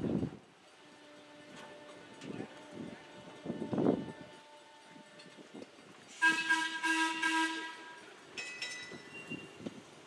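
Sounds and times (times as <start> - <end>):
rumble of moving train cars: 0.0 - 10.0
train air horn blast: 0.8 - 8.2.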